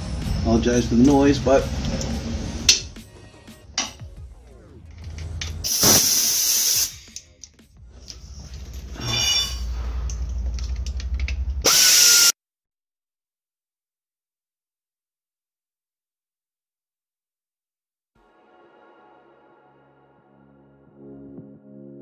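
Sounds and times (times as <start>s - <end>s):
loud hiss bursts: 5.6s - 7.2s, 11.7s - 12.4s
power tool running in bursts: 11.7s - 12.3s.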